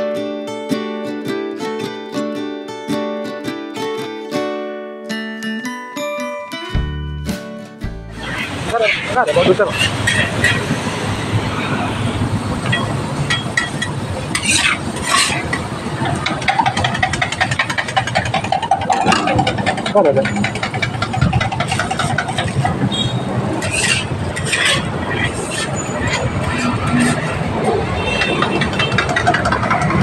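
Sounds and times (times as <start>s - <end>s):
motorbike engines passing: 8.1s - 30.0s
indistinct voices: 8.2s - 10.7s, 18.8s - 22.5s
sharp clicks and knocks: 12.7s - 22.9s, 23.6s - 30.0s.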